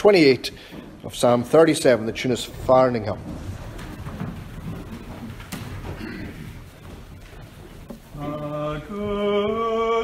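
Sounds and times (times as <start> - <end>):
congregation shuffling and rustling: 0.0 - 10.0.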